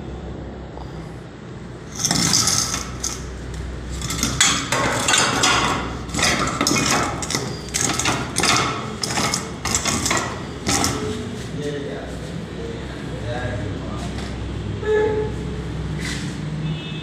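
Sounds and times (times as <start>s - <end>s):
hammering knocks and clatter: 1.9s - 11.3s.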